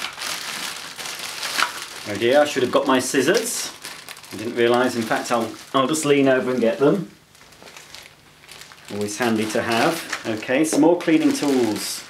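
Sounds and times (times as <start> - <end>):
plastic packaging rustling: 0.0 - 12.0.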